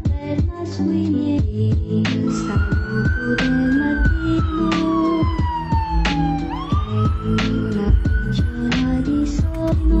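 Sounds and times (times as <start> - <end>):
music with steady beat: 1.3 - 10.0
emergency vehicle siren wailing: 2.2 - 9.9.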